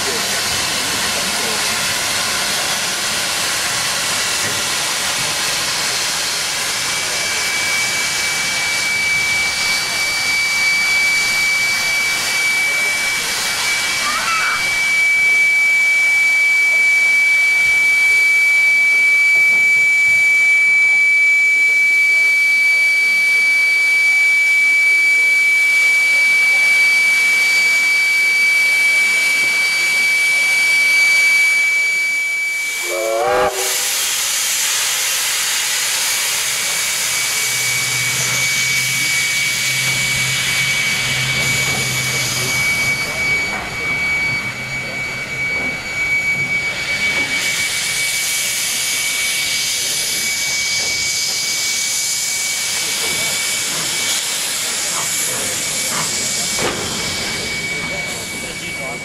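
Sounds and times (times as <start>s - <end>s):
high even whine: 0.0s - 15.7s, 29.4s - 59.0s
steam locomotive hissing steam: 0.0s - 59.0s.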